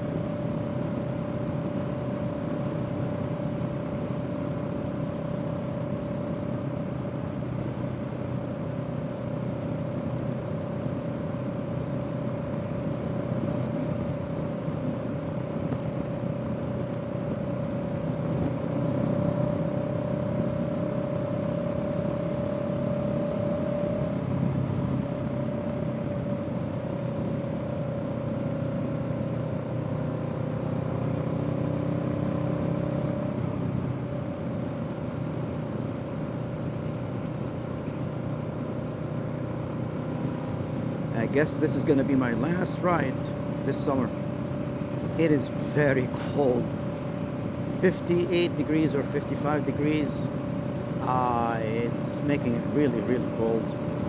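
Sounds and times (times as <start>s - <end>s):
motorcycle engine cruising: 0.0s - 54.0s
wind and road noise: 0.0s - 54.0s.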